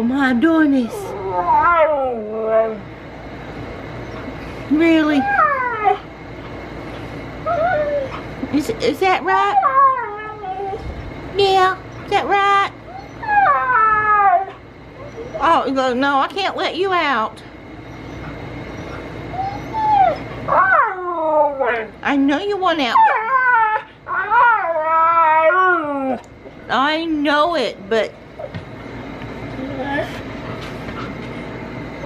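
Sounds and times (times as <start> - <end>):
dog yowling: 1.0 - 2.9, 5.0 - 6.1, 7.4 - 8.2, 9.2 - 10.8, 11.9 - 15.6, 18.0 - 22.1, 22.8 - 26.3.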